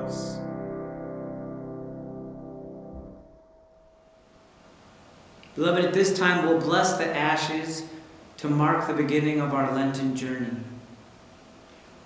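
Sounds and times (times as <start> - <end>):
faint high digital piano tone: 0.0 - 4.6.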